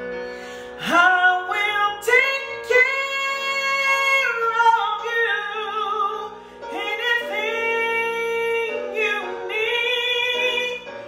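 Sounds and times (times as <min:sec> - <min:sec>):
piano accompaniment: 0:00.0 - 0:11.0
woman belting gospel song: 0:00.8 - 0:11.0.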